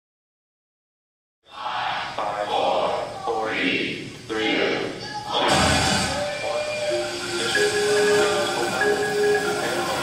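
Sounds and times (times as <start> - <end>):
voice: 1.5 - 6.6, 7.4 - 10.0
ringing mallet percussion tones: 6.4 - 10.0.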